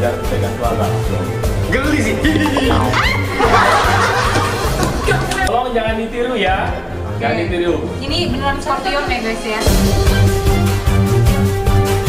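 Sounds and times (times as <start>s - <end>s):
background music: 0.0s - 12.0s
group laughing and shrieking: 2.9s - 5.5s.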